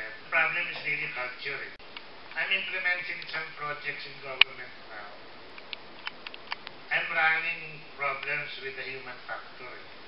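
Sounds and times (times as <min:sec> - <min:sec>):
man speaking into microphone: 0:00.0 - 0:01.8, 0:02.4 - 0:05.2, 0:06.9 - 0:09.9
steady hiss: 0:00.0 - 0:10.0.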